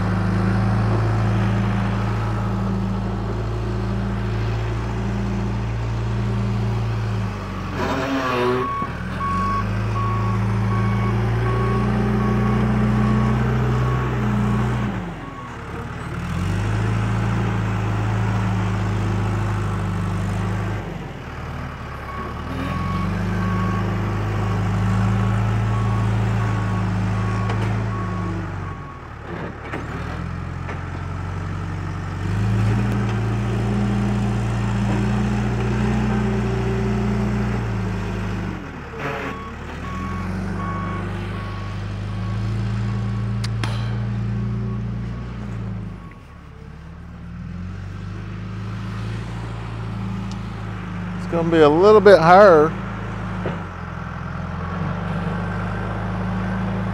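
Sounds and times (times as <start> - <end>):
diesel engine under load: 0.0 - 56.9
reverse alarm beeping: 8.6 - 14.1.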